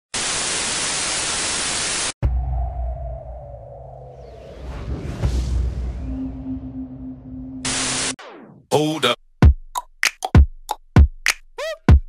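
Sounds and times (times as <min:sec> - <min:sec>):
faint tone gliding down: 0:02.2 - 0:08.2
deep low boom: 0:02.2 - 0:08.6.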